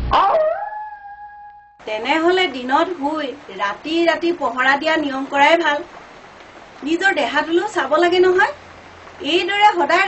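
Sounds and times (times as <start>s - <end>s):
dog-like howl: 0.1s - 1.8s.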